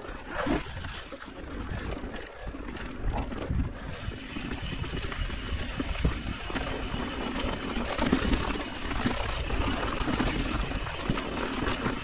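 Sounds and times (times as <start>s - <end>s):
bike tyres rumbling over stones: 0.0s - 12.0s.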